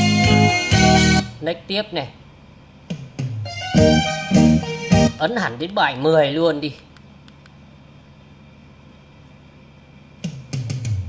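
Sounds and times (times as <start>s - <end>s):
music from cd player: 0.0s - 1.4s, 2.9s - 5.3s, 10.2s - 11.0s
low fan hiss: 0.0s - 11.0s.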